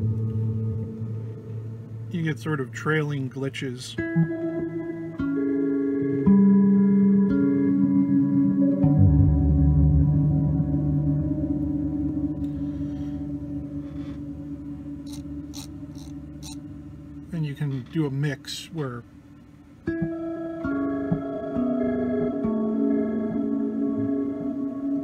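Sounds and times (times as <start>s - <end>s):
looped guitar tones: 0.0s - 25.0s.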